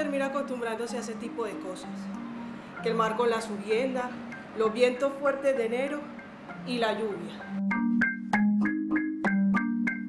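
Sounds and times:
marimba music: 0.0 - 10.0.

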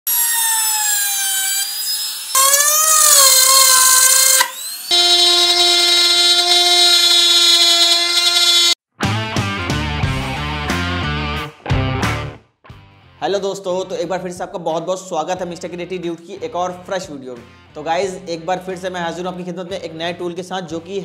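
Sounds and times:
wood router whining: 0.1 - 8.8
guitar music with a beat: 9.0 - 13.2.

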